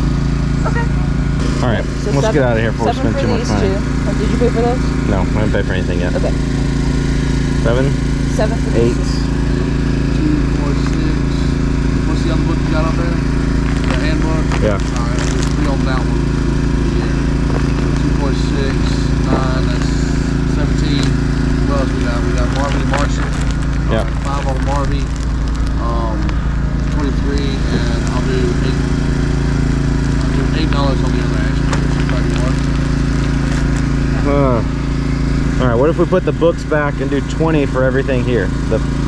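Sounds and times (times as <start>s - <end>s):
low engine drone: 0.0s - 39.0s
people talking in background: 0.6s - 6.5s, 7.6s - 11.4s, 12.1s - 13.2s, 13.9s - 16.2s, 16.8s - 23.2s, 23.9s - 25.0s, 25.8s - 28.8s, 30.3s - 32.6s, 34.0s - 34.8s, 35.5s - 38.8s.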